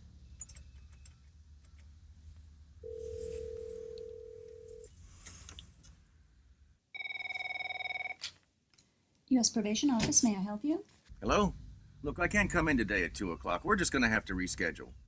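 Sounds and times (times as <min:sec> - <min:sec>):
ringback tone: 0:02.8 - 0:04.9, 0:07.0 - 0:08.2
office telephone warbling ring: 0:07.0 - 0:08.2.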